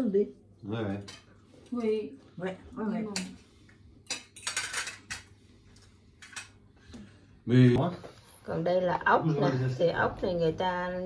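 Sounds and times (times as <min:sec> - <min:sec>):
cutlery clinking on plates: 0:04.1 - 0:05.4.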